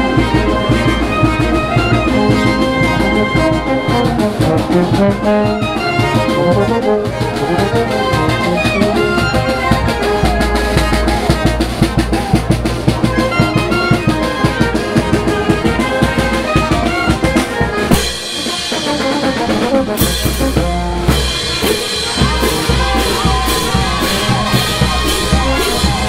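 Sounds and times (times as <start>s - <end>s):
saxophones and brass: 0.0s - 26.0s
snare drum beat: 8.2s - 19.0s, 19.9s - 26.0s
bass drum: 9.3s - 18.2s, 20.0s - 26.0s.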